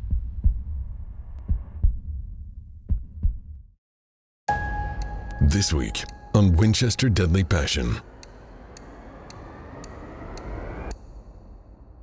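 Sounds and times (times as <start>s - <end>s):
heartbeat double thumps: 0.0s - 3.8s.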